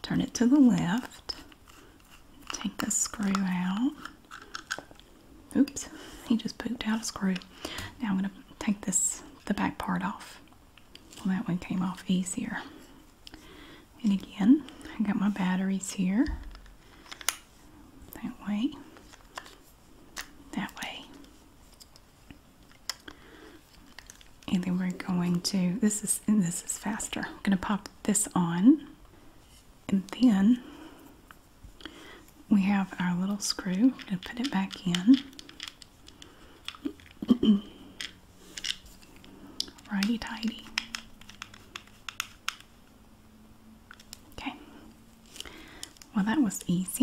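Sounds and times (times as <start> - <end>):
handling plastic toy: 0.9 - 5.1, 16.5 - 17.5, 19.0 - 20.3, 23.6 - 24.5, 33.4 - 37.2, 38.0 - 42.8
small plastic clicks: 39.6 - 42.7.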